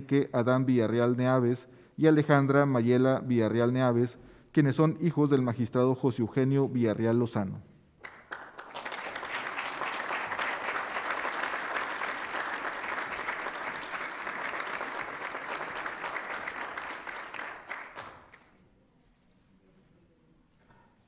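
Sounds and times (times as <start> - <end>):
audience applauding: 8.0 - 18.5.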